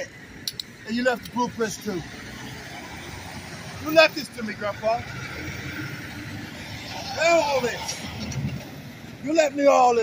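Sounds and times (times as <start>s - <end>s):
diesel engine rumbling: 0.0s - 10.0s.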